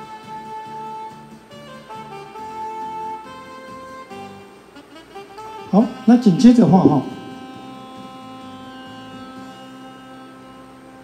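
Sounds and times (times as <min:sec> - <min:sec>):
sound system electrical hum: 0:01.4 - 0:11.0.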